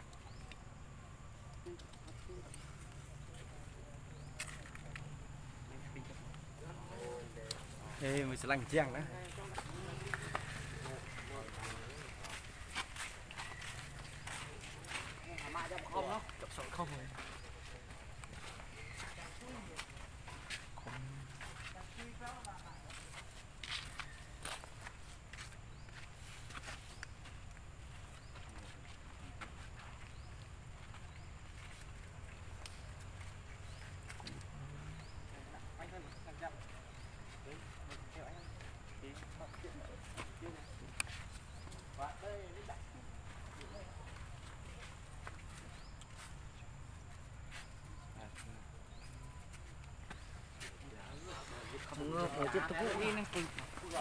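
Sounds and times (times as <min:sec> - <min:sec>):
faint voices talking: 0:01.4 - 0:23.4.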